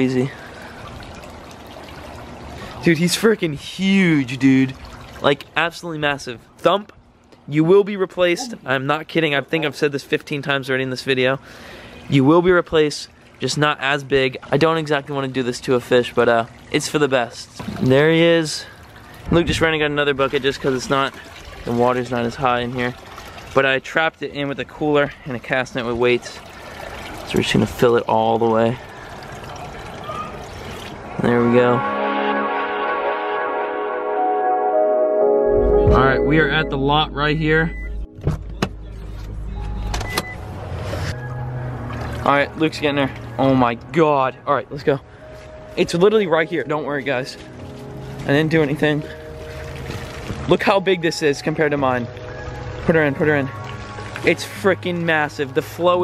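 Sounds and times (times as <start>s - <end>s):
water trickling and pouring: 0.0s - 6.2s, 10.6s - 31.7s, 40.8s - 56.0s.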